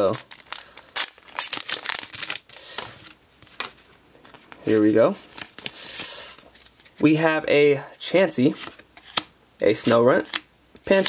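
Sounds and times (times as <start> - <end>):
foil wrapper tearing and crinkling: 0.0 - 2.6.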